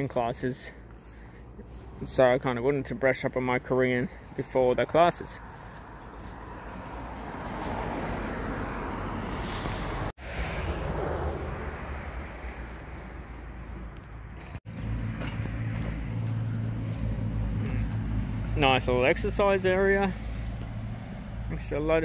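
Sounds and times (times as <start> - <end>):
engine rumbling: 0.0 - 22.0
outdoor noise: 0.0 - 22.0.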